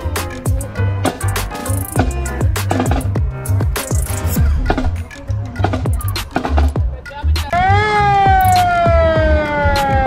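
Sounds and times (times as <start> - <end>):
music with steady beat: 0.0 - 10.0
fire truck siren wailing: 7.5 - 10.0.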